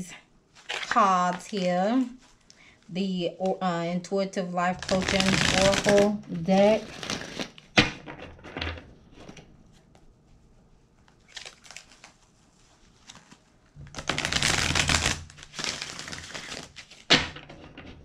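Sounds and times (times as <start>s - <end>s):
cards rustling: 4.8s - 7.7s, 11.1s - 17.2s
cards shuffling: 4.8s - 8.0s, 13.0s - 18.0s.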